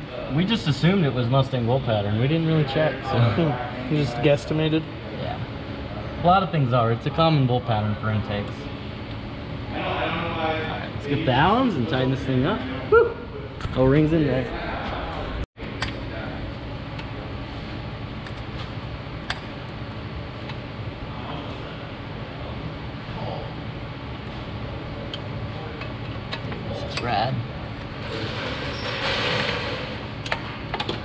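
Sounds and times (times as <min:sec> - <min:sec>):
steady shop hum: 0:00.0 - 0:31.0.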